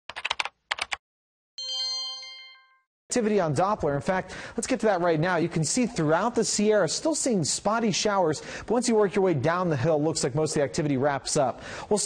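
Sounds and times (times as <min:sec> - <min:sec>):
bright bell-like chime: 0:01.6 - 0:02.9.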